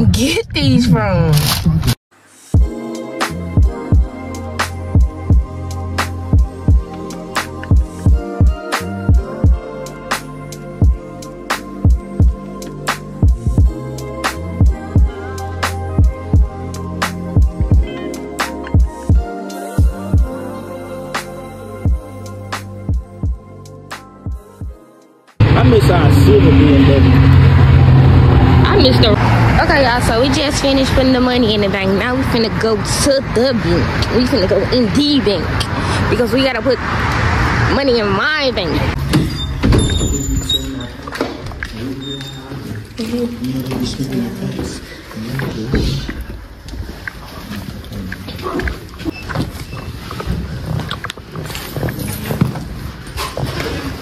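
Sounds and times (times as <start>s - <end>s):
indistinct voices talking: 0.0s - 2.0s, 25.4s - 46.4s
car engine idling: 25.4s - 33.2s.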